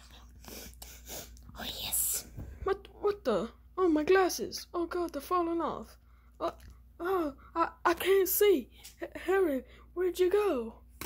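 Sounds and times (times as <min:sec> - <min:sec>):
person whispering: 0:01.6 - 0:02.2.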